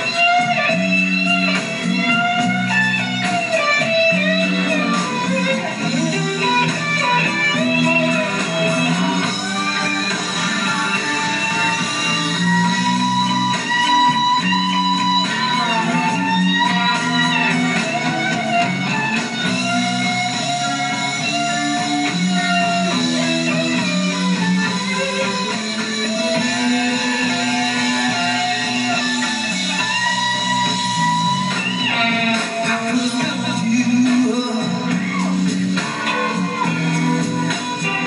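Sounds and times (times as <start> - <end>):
electric guitar lead: 0.0 - 38.0
rock band playing: 0.0 - 38.0.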